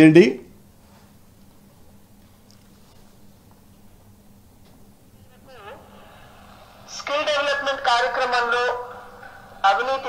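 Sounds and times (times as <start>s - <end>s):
low room noise: 0.0s - 10.0s
faint voice: 5.2s - 10.0s.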